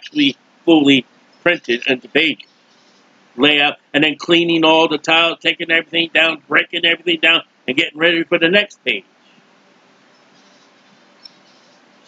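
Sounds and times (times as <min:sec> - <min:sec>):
room hiss and microphone noise: 0:00.0 - 0:12.0.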